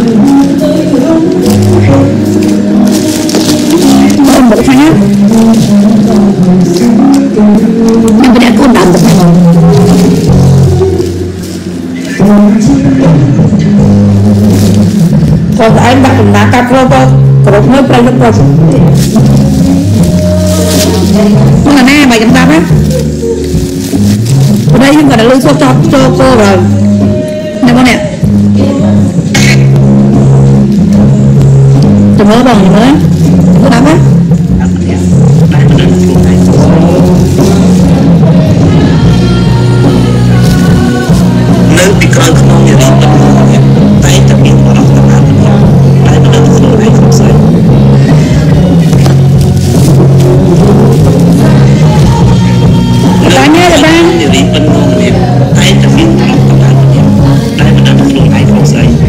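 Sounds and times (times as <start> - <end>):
background music: 0.0 - 59.0
loud low drone: 0.0 - 59.0
plastic bag crinkling: 0.1 - 12.0, 14.4 - 15.2, 18.9 - 26.2.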